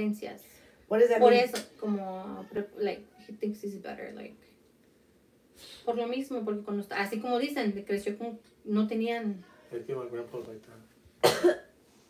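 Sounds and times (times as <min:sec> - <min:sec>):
person speaking: 0:01.1 - 0:03.5
person coughing: 0:11.2 - 0:11.7.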